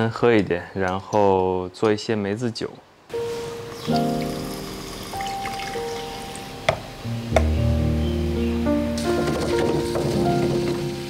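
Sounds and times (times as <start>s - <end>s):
background music with held notes: 3.1s - 11.0s
drink pouring into glass: 3.7s - 6.5s.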